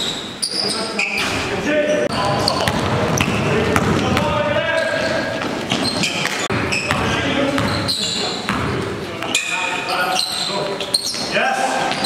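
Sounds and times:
voices in echoing hall: 0:00.0 - 0:12.0
basketball bouncing on gym floor: 0:02.2 - 0:07.9, 0:08.5 - 0:09.3.

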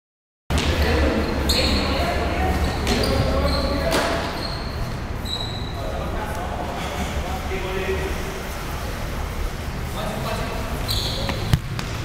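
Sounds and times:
players' voices: 0:00.5 - 0:11.9
trainers squeaking on floor: 0:00.9 - 0:06.0, 0:10.8 - 0:11.5
hard ball kicks: 0:11.3 - 0:12.0.

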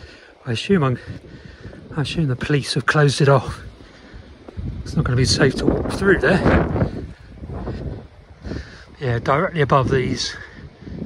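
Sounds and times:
footsteps on stony lane: 0:00.0 - 0:11.0
wind buffeting microphone: 0:00.0 - 0:11.0.

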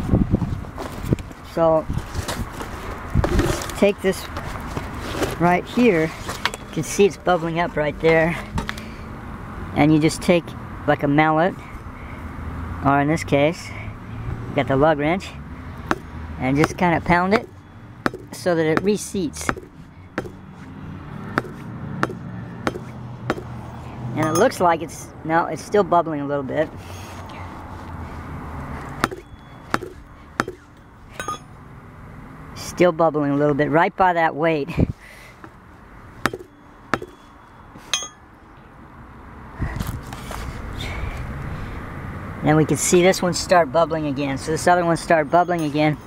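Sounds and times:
wrench knocking on tire: 0:15.8 - 0:20.4, 0:21.3 - 0:23.6, 0:29.0 - 0:31.5, 0:36.2 - 0:38.2.

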